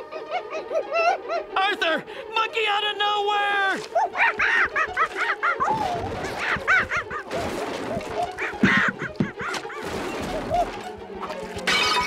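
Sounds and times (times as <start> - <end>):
cartoon music: 2.7 - 12.0.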